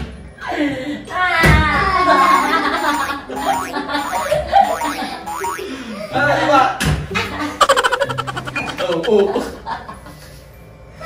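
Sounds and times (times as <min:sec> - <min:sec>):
people laughing and squealing: 0:01.9 - 0:05.1, 0:07.6 - 0:09.6.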